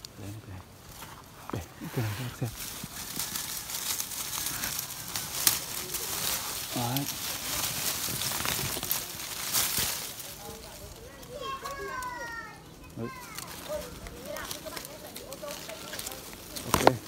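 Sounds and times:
leaves and twigs rustling: 0:00.0 - 0:17.0
twigs snapping: 0:00.8 - 0:17.0.

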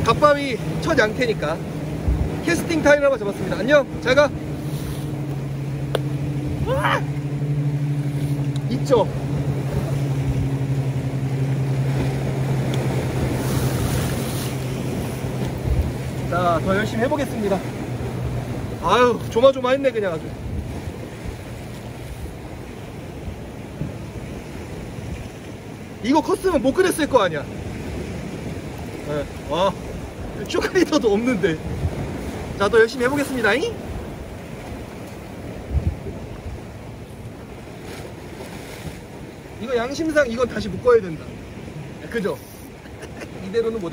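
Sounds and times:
wind buffeting microphone: 0:00.0 - 0:42.1
boat engine running: 0:00.0 - 0:43.9
sea waves: 0:00.0 - 0:43.9.

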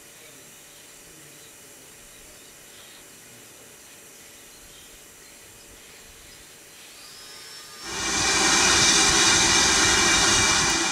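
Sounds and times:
steam locomotive blowing off steam: 0:07.3 - 0:10.9.

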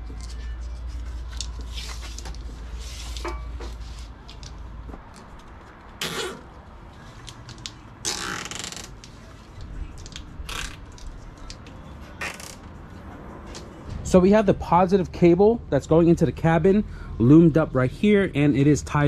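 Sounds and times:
cable scraping against bodywork: 0:07.6 - 0:09.3, 0:10.1 - 0:11.6.

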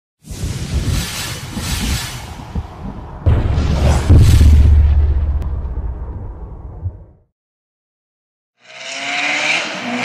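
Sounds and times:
loud hissing rush: 0:00.2 - 0:02.9
low rumble: 0:00.3 - 0:07.3.

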